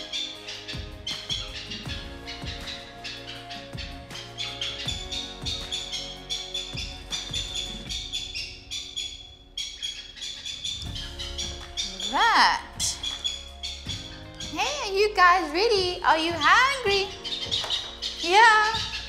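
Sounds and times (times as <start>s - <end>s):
background music: 0.0s - 19.0s
high chirping bird chicks: 0.0s - 19.0s.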